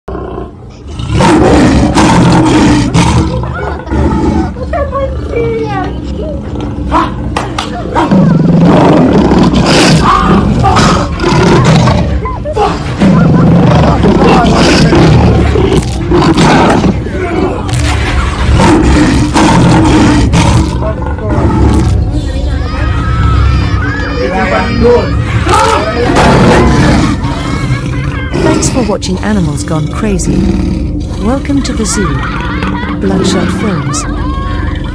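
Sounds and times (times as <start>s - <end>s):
lion roaring: 0.1s - 4.7s, 6.8s - 34.9s.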